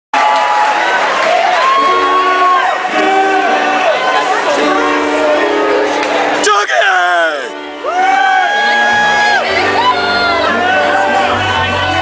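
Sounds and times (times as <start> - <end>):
concert crowd cheering: 0.1 - 12.0.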